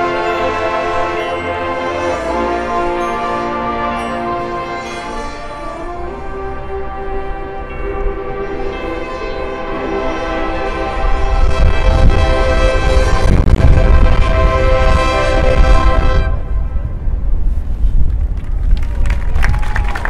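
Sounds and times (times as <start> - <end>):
marching band chord: 0.0 - 16.7
crowd cheering: 18.7 - 20.0.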